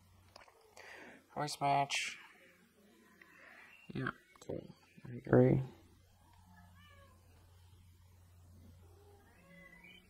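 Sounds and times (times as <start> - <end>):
faint animal calls: 6.0 - 7.6, 8.6 - 10.0.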